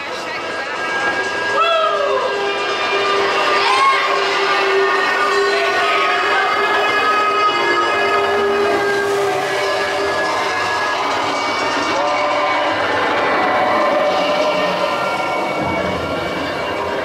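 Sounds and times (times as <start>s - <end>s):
mechanical whine: 0.0s - 17.0s
roller coaster lift clattering: 0.0s - 17.0s.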